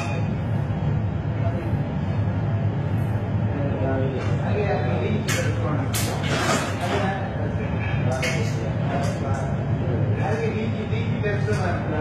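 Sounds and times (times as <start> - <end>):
steady low rumble: 0.0 - 6.2, 7.1 - 12.0.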